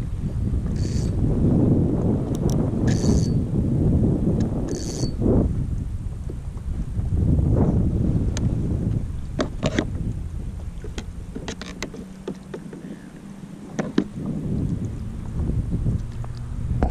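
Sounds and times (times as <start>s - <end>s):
wind buffeting microphone: 0.0s - 16.9s.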